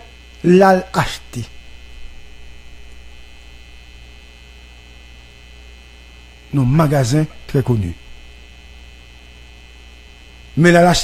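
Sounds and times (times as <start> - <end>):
electrical mains hum: 0.0 - 11.0
high-pitched whine tones: 0.0 - 11.0.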